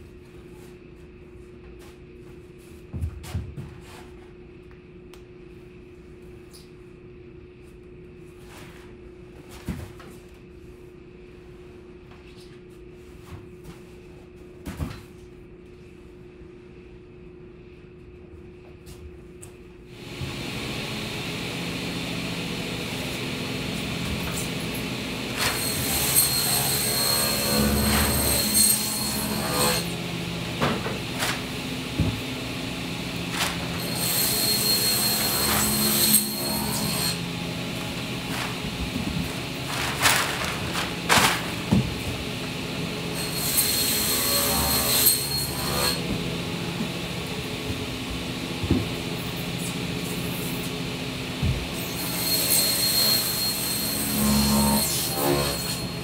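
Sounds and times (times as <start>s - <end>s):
workshop machine running loudly: 19.9s - 56.0s
steady hum: 27.0s - 43.2s.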